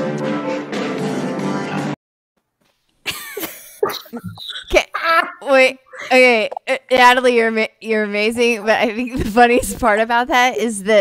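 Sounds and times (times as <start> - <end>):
sharp gasps: 5.9 - 6.2.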